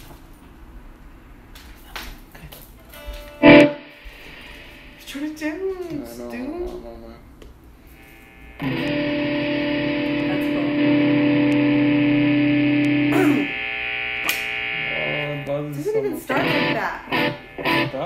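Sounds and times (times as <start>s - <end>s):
distorted electric guitar chord: 3.0s - 5.7s, 7.9s - 18.0s
guitar slide: 3.0s - 5.7s, 7.8s - 18.0s.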